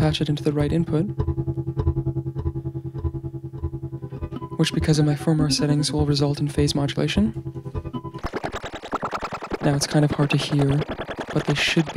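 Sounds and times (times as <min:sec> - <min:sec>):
pulsing synth guitar-like tone: 0:00.0 - 0:11.9.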